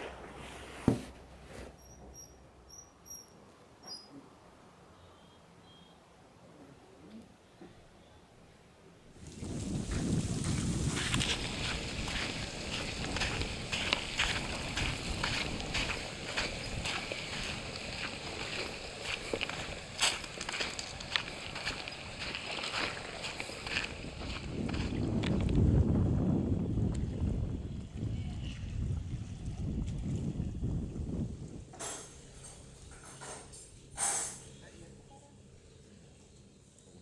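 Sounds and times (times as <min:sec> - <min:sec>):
wind rumble on microphone: 0:09.1 - 0:32.0
footsteps on coarse sand: 0:09.2 - 0:25.7.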